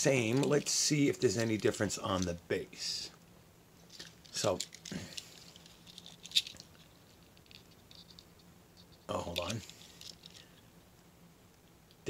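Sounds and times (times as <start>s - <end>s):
toy cars clicking and rattling: 3.9s - 8.3s, 9.2s - 10.4s.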